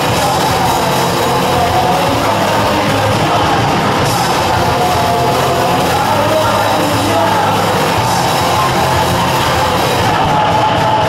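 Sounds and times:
bass guitar: 0:00.0 - 0:11.0
drums: 0:00.0 - 0:11.0
electric guitar: 0:00.0 - 0:11.0.

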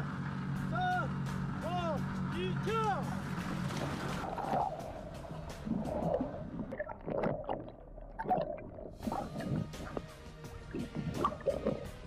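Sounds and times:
background music: 0:00.0 - 0:12.0
sea water splashing: 0:03.2 - 0:12.0.

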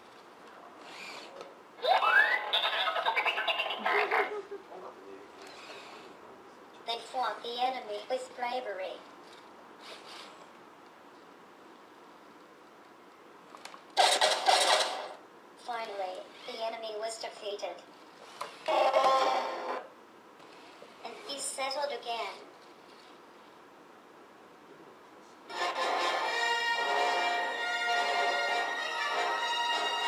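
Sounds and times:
harsh battle sound effect: 0:14.0 - 0:15.2.

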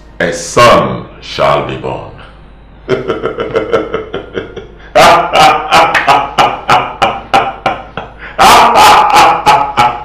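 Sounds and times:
men laughing heartily: 0:02.9 - 0:10.0.

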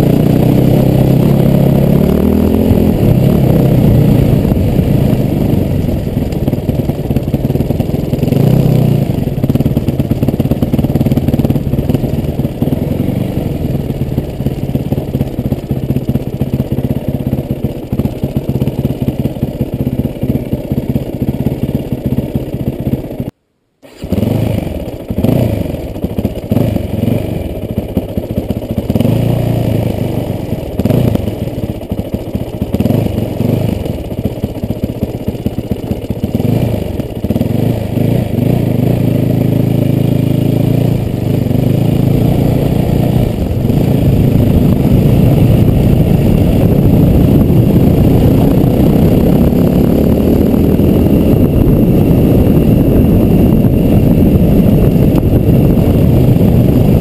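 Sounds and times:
dirt bike engine revving: 0:00.0 - 0:57.0.

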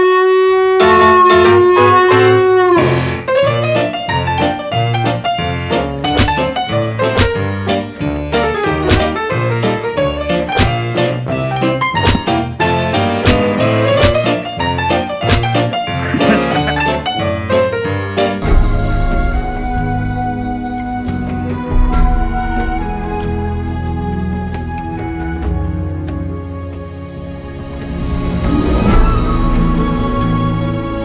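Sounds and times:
jazzy piano music with brass: 0:00.7 - 0:31.0
dog howling: 0:00.8 - 0:02.8.

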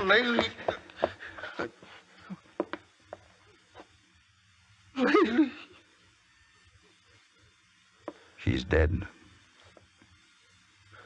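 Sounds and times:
faint knocks and thumps: 0:00.2 - 0:01.5.

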